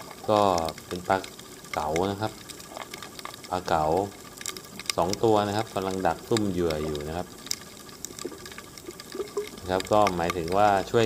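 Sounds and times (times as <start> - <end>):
faint underwater clicks and crackles: 0.0 - 11.0
underwater low wash: 0.0 - 11.0.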